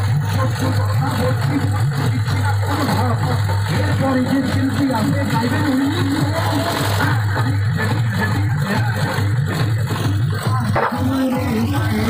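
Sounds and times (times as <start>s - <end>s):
diesel generator engine running: 0.0s - 12.0s
loud bass-heavy music: 0.0s - 12.0s.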